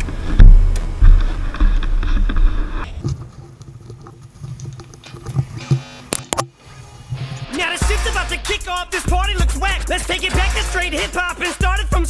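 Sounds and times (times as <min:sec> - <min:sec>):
low rumbling buffets: 0:00.0 - 0:05.6, 0:06.6 - 0:12.0.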